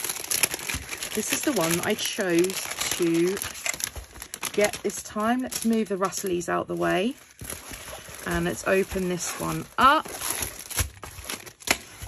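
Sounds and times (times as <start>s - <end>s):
packaging rustling and crinkling: 0.0s - 12.0s.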